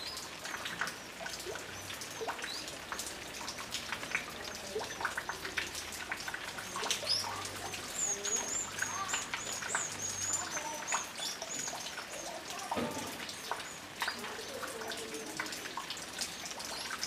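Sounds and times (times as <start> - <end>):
birds chirping: 0.0 - 3.5, 6.5 - 15.4.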